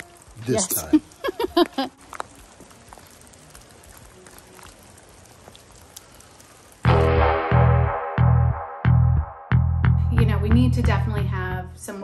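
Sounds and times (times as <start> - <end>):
water drips: 0.0 - 7.1
light rain in forest: 0.0 - 7.6.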